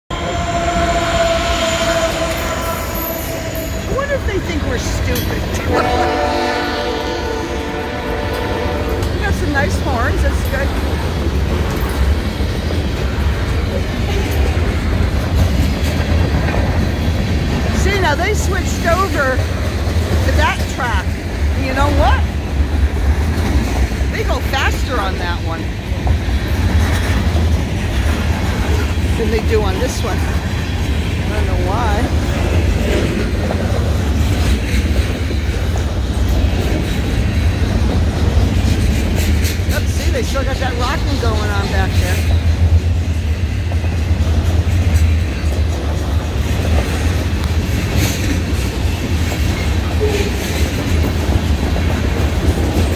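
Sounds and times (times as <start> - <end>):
freight train rolling past: 0.1 - 52.9.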